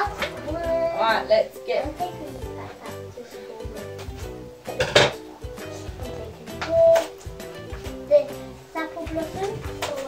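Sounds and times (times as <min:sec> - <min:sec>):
background music: 0:00.0 - 0:10.0
plastic toys and packaging clattering: 0:09.0 - 0:10.0.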